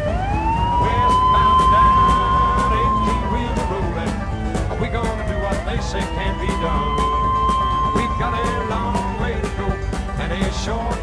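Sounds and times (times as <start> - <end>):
siren wailing: 0.0 - 10.0
low rumble: 0.0 - 11.0.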